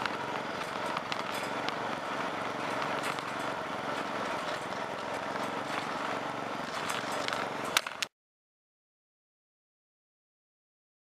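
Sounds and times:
riding lawn mower engine running: 0:00.0 - 0:08.1.

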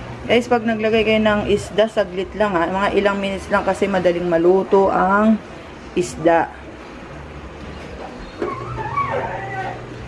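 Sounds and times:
animal whining call: 0:08.3 - 0:10.0.

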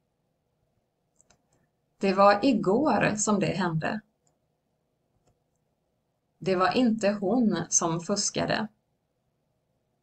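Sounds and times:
faint clicks: 0:01.1 - 0:01.7.

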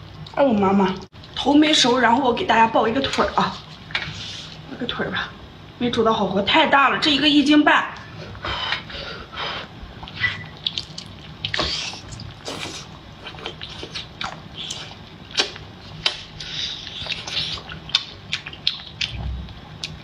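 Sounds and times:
mouth smacks and clicks: 0:10.0 - 0:12.7, 0:13.3 - 0:19.2
person chewing and slurping: 0:10.0 - 0:19.2.

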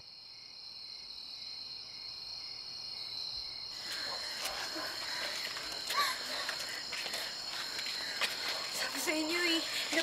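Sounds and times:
crickets trilling: 0:00.0 - 0:10.0.

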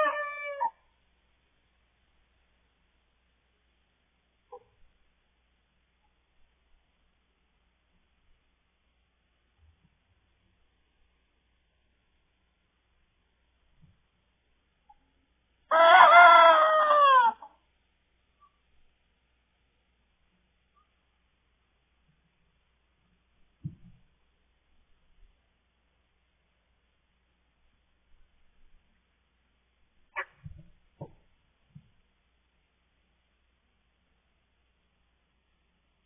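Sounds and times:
cockerel crowing: 0:00.0 - 0:00.8, 0:15.7 - 0:17.6.

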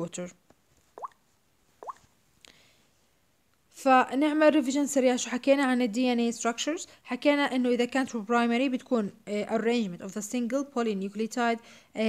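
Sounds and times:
rising mouth pops: 0:01.8 - 0:02.0.

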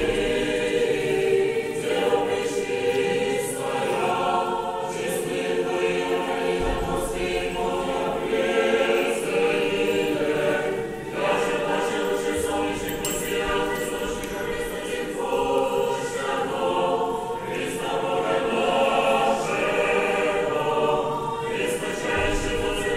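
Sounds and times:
choir singing a cappella: 0:00.0 - 0:22.9.

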